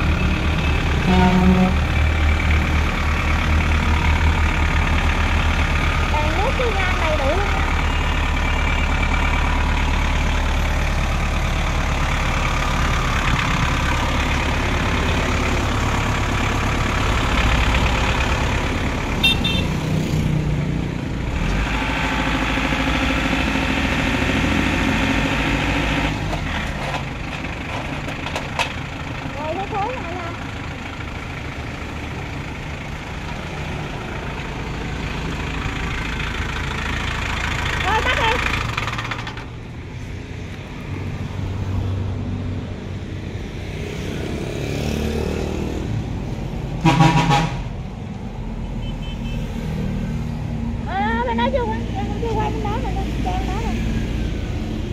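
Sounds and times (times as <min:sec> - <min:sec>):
tractor diesel engine running: 0:00.0 - 0:44.0, 0:45.7 - 0:54.9
short horn toot: 0:46.8 - 0:47.6.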